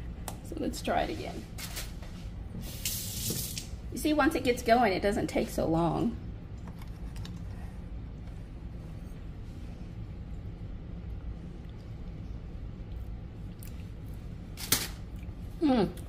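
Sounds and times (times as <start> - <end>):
low background rumble: 3.7 - 16.0.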